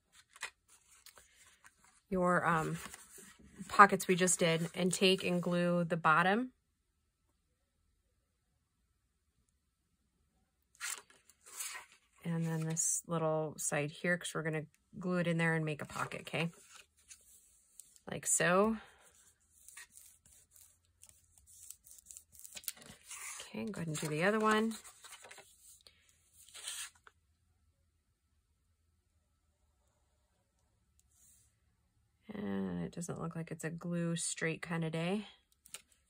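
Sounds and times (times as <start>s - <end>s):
paper rustling: 0.0s - 4.0s, 10.8s - 12.8s, 19.0s - 27.1s.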